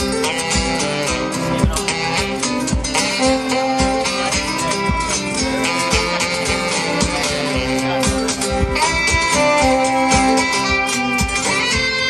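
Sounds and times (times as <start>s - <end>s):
acoustic guitar: 0.0s - 12.0s
steady beat: 0.0s - 12.0s.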